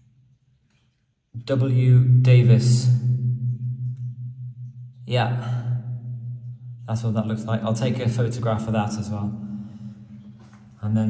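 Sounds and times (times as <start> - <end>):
low pulsing hum: 1.9 - 11.0.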